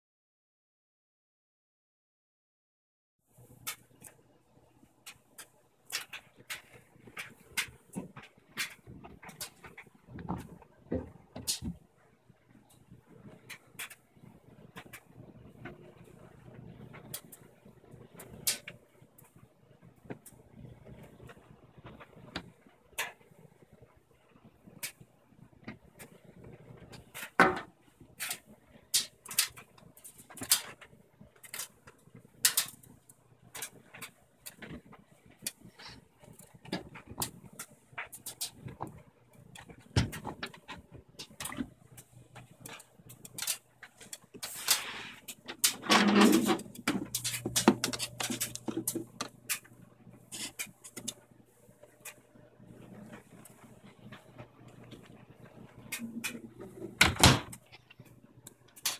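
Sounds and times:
washing machine low hum: 5.8s - 22.6s, 34.2s - 58.7s
washing machine rush: 44.4s - 49.2s
washing machine clicks and knocks: 56.3s - 57.6s.

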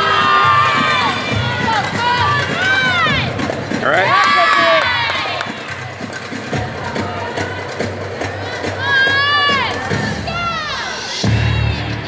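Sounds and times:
crowd cheering: 0.0s - 11.9s
floor-exercise music playing: 0.0s - 12.0s.

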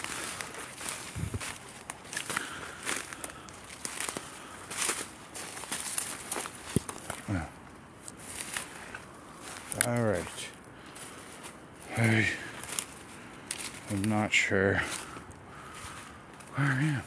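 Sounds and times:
footsteps crunching through dry leaves: 0.0s - 17.0s
rustle of undergrowth: 0.0s - 17.0s.

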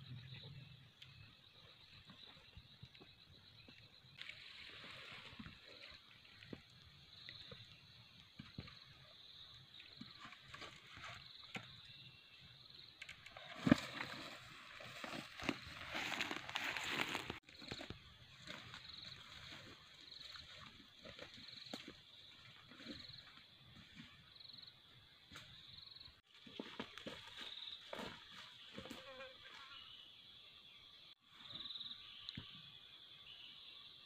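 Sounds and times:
footsteps through undergrowth: 13.5s - 23.3s, 26.2s - 29.6s.

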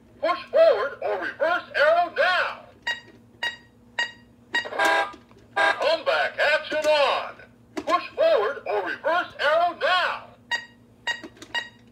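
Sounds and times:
toy short beeps: 2.9s - 5.1s, 10.5s - 11.8s.

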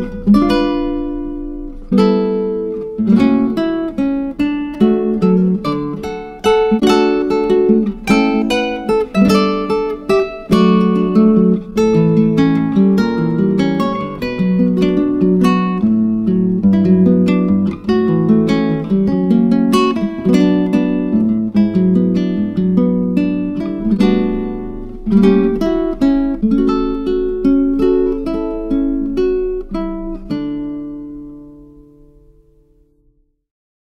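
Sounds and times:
acoustic guitar picking a tune: 0.0s - 33.2s.

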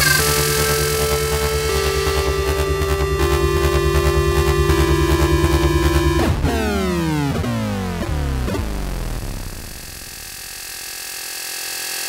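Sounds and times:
faint held electronic tones: 0.0s - 3.0s.

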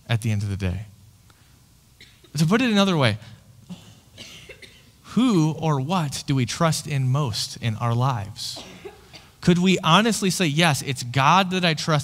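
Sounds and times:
man speaking: 0.0s - 0.9s, 2.3s - 3.4s, 5.0s - 8.7s, 9.4s - 12.0s
faint short cough: 2.0s - 2.4s, 3.7s - 5.0s, 8.6s - 9.4s.

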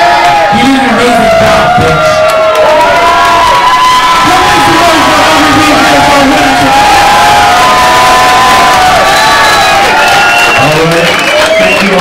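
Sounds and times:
audience cheering and screaming: 0.0s - 12.0s.

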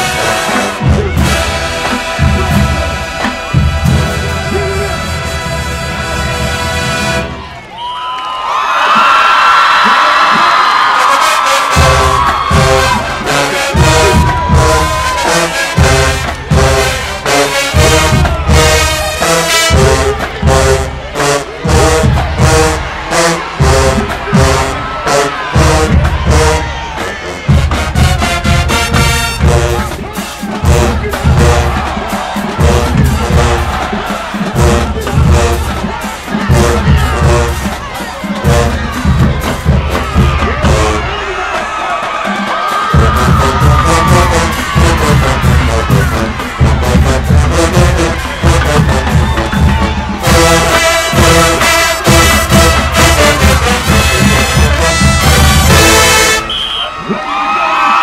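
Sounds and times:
marching band playing: 0.0s - 8.0s, 8.6s - 58.0s
crowd cheering: 0.0s - 58.0s.

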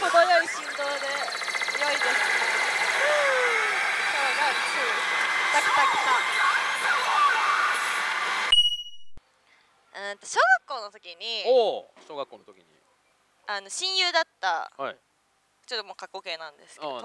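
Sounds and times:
high beep: 8.5s - 9.2s.

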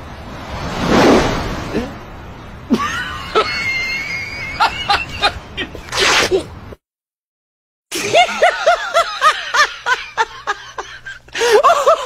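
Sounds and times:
man laughing: 2.7s - 3.6s, 4.5s - 5.9s, 7.9s - 12.0s.

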